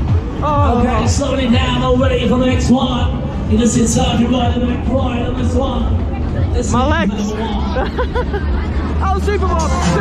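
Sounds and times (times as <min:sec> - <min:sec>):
deep steady rumble: 0:00.0 - 0:10.0
loud fairground ride music: 0:00.0 - 0:10.0.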